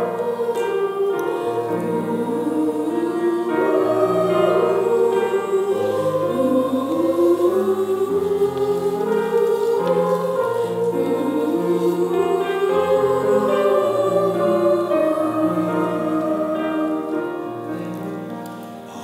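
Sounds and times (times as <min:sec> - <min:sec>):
choir singing long chords: 0:00.0 - 0:19.0.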